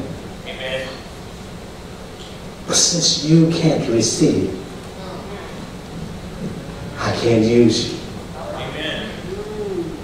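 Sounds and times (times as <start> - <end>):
low rumbling room noise: 0.0 - 10.0.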